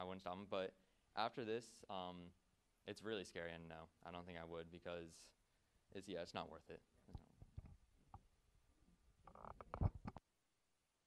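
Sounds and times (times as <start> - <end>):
microphone handling rubbing: 7.0 - 8.3, 9.2 - 10.2.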